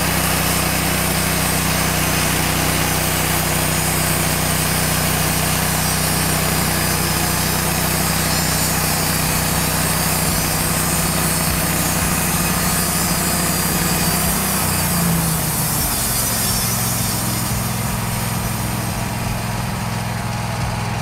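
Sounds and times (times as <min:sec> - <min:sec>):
sawmill engine running: 0:00.0 - 0:21.0.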